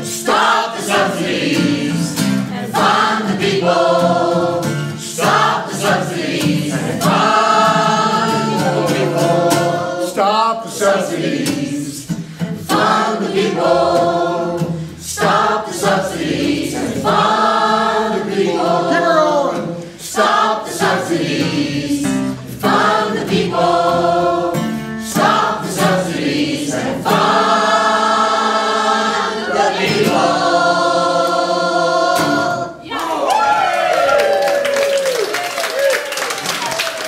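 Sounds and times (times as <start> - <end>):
acoustic guitar: 0.0 - 32.9
mixed choir singing: 0.0 - 33.6.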